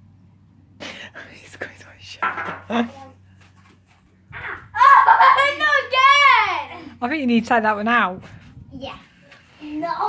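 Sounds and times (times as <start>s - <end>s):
child's high-pitched voice: 4.4s - 6.9s, 8.7s - 10.0s.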